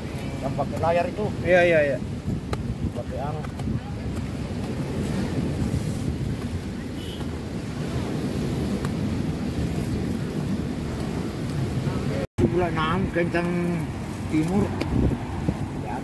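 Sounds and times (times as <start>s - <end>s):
surf on beach: 0.0s - 16.0s
wind rumbling on microphone: 0.0s - 16.0s.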